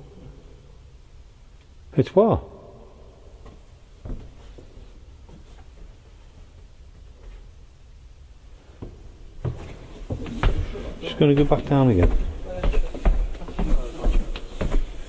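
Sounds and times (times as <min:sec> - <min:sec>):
low thumps and rustles: 0:08.7 - 0:15.0.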